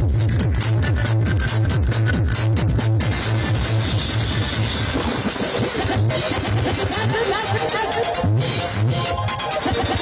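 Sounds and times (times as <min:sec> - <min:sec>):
electronic dance music: 0:00.0 - 0:10.0
heavy bass beat: 0:00.0 - 0:10.0.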